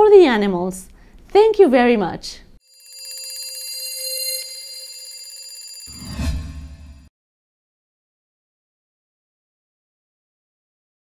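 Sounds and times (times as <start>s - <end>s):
alarm clock bell ringing: 2.6s - 7.1s.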